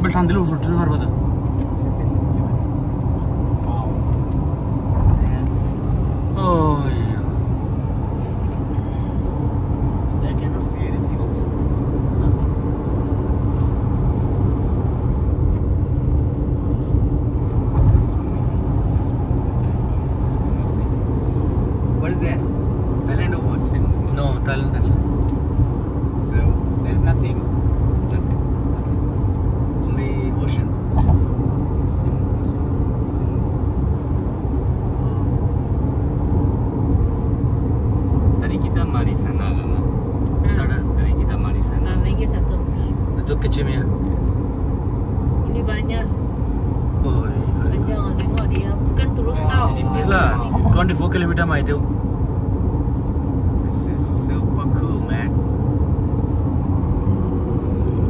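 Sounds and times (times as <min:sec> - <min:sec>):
car engine noise: 0:00.0 - 0:58.0
road and tyre rumble: 0:00.0 - 0:58.0.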